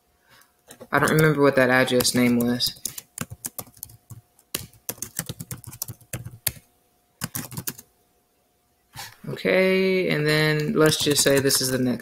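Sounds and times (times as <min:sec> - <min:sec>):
typing on computer keyboard: 0:00.8 - 0:01.3, 0:01.9 - 0:06.6, 0:07.2 - 0:07.9, 0:10.8 - 0:11.8.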